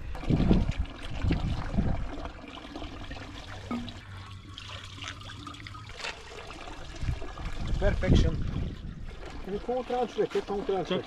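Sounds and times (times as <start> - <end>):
water trickling from a tap: 0.0 - 11.0.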